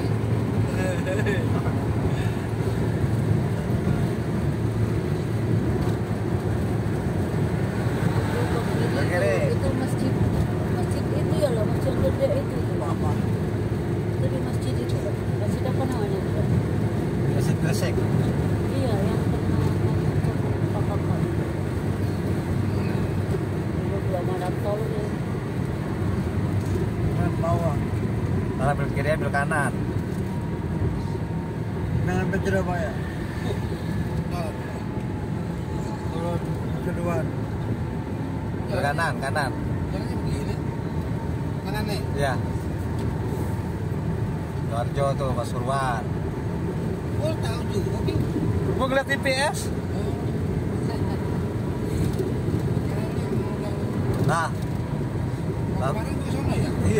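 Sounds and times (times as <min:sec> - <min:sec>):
tyres and engine rumble in car: 0:00.0 - 0:56.9.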